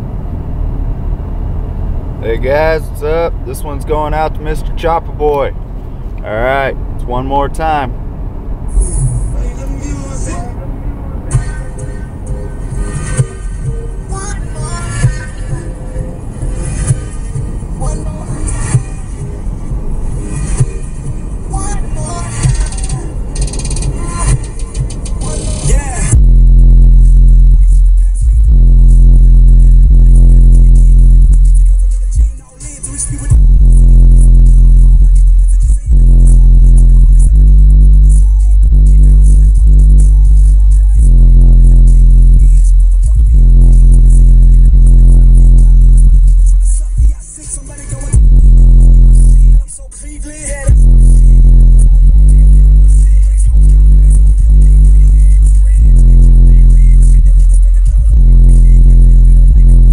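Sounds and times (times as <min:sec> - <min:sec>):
deep bass: 0:00.0 - 0:32.3, 0:33.1 - 0:47.2, 0:47.8 - 0:59.9
hip hop on car stereo: 0:00.0 - 0:59.9.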